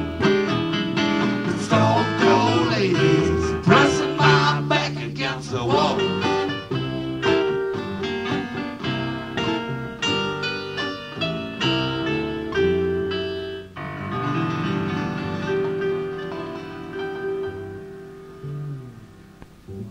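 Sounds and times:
acoustic guitar picking chords: 0.0s - 19.9s.

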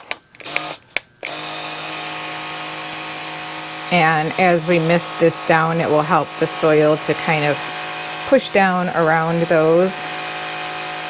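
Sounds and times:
small electric pump humming: 0.0s - 11.0s.

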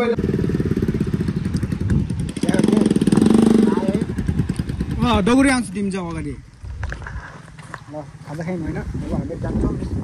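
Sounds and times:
motorcycle engine running: 0.0s - 6.1s.

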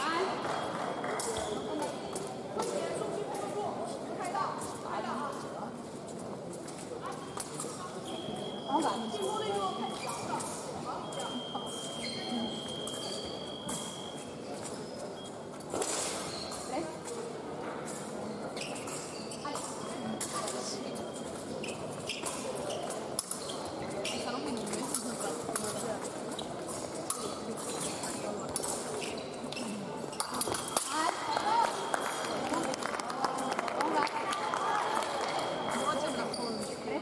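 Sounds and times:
voices in a hall: 0.0s - 37.0s.

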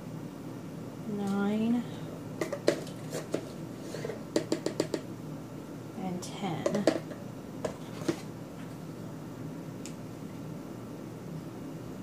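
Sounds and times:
plastic spoon tapping a container: 2.4s - 3.4s, 4.3s - 5.1s, 6.6s - 7.2s.

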